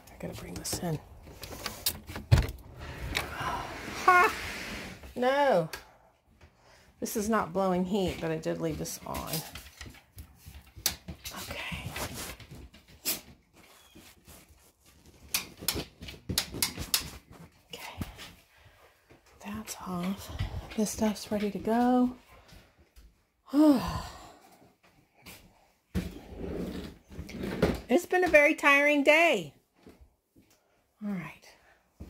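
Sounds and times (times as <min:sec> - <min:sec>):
woman's voice: 0:00.0 - 0:01.1, 0:03.3 - 0:04.4, 0:05.2 - 0:05.8, 0:07.0 - 0:09.6, 0:11.3 - 0:12.0, 0:19.4 - 0:22.2, 0:23.5 - 0:24.2, 0:27.9 - 0:29.6, 0:31.0 - 0:31.6.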